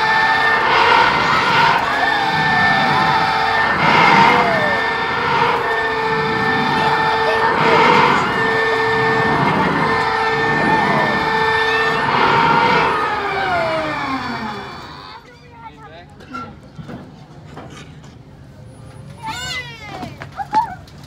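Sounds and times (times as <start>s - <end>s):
children squealing and shouting: 0.0s - 15.2s
ride machine whine: 0.0s - 15.8s.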